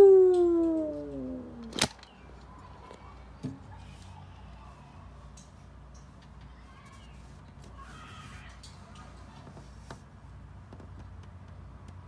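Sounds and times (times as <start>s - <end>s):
long falling vocal call: 0.0s - 1.7s.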